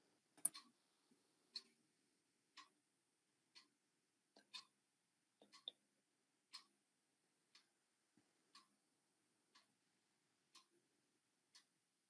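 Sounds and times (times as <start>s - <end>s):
faint clock ticking: 0.0s - 12.0s.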